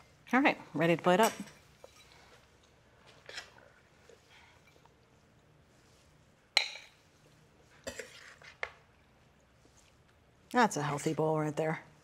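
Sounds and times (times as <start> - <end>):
metal spoon scraping skillet: 7.8 - 8.7.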